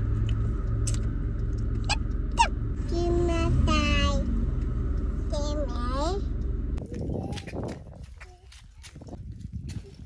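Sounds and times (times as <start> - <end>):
plastic sandals on asphalt: 6.8 - 10.0.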